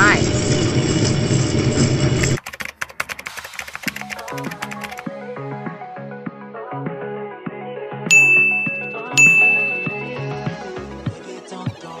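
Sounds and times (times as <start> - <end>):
background music: 3.7 - 12.0
bright ding: 8.1 - 10.6.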